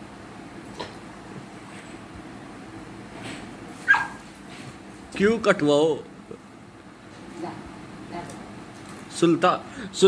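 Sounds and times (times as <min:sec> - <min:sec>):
dog yipping sharply: 0:03.8 - 0:04.3.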